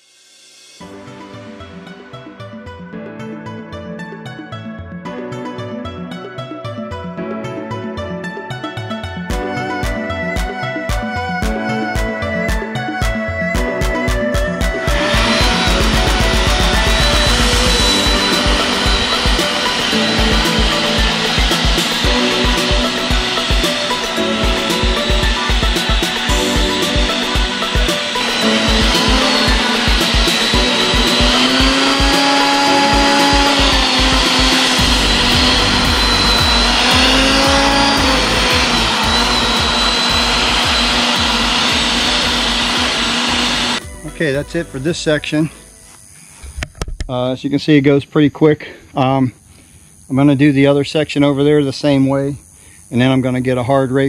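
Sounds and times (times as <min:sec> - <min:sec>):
background music with steady beat: 0:00.3 - 0:46.1
electric tiller whirring: 0:09.3 - 0:44.2.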